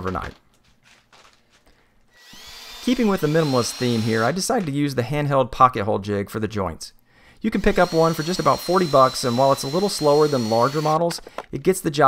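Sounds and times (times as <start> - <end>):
cordless drill whine: 2.1 - 4.4, 7.6 - 11.0.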